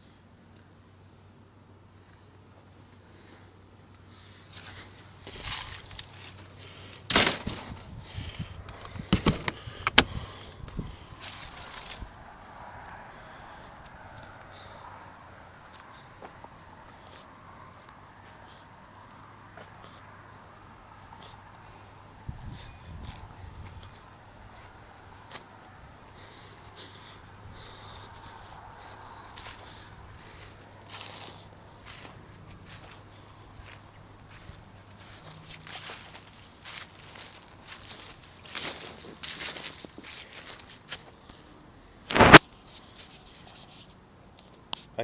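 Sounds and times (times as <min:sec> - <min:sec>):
footsteps on dry leaves: 0:04.5 - 0:07.9, 0:11.1 - 0:12.2, 0:27.6 - 0:41.5.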